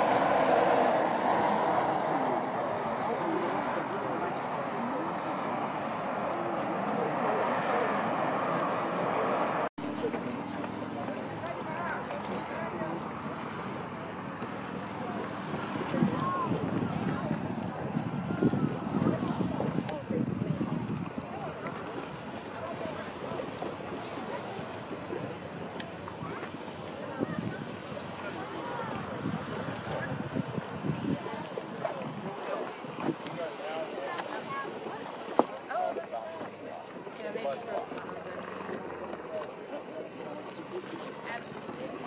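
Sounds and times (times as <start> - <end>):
wind buffeting microphone: 0.0 - 37.1
faint voices: 0.0 - 42.0.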